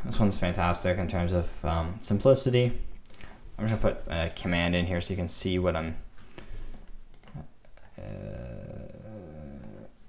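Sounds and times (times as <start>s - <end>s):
computer keyboard clicks: 7.1s - 7.4s
man saying uh: 7.4s - 9.9s.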